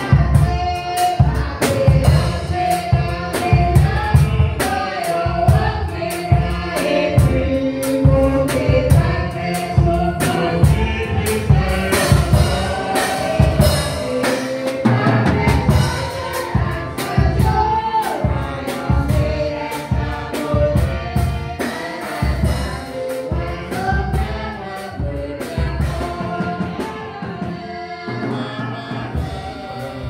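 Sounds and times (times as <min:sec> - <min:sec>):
steady drum beat: 0:00.0 - 0:30.0
voices singing a hymn: 0:00.0 - 0:30.0.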